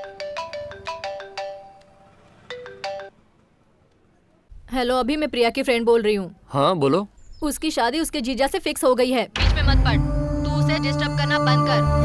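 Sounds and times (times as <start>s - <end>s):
mobile phone ringtone: 0.0s - 3.2s.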